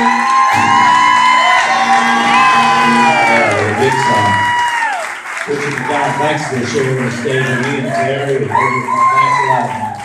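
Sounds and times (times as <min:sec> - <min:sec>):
country band playing: 0:00.0 - 0:04.4.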